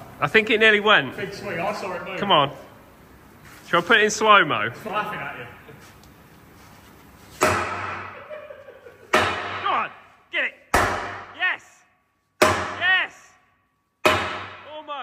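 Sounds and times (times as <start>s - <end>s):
sledgehammer striking steel: 7.4s - 8.2s, 9.1s - 9.9s, 10.7s - 11.4s, 12.4s - 13.1s, 14.0s - 14.8s.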